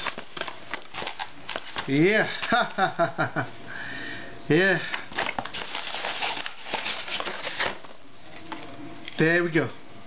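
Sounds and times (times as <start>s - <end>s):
cardboard box crackling and scraping: 5.2s - 7.9s.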